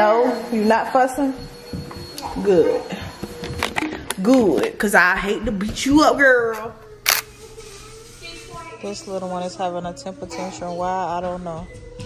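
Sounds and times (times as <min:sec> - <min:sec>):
camera shutter click: 0:07.0 - 0:07.3.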